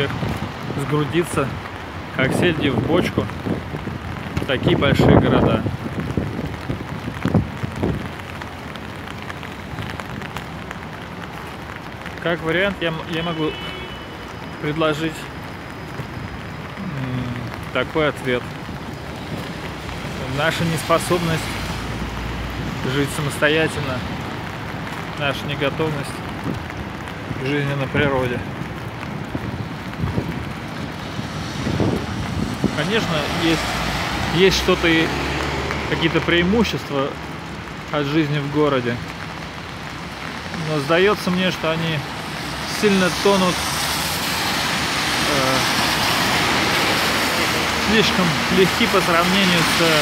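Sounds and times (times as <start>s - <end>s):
wind buffeting microphone: 0.0s - 8.9s, 26.2s - 34.3s
city street traffic: 0.0s - 50.0s
passing vehicles: 0.0s - 50.0s.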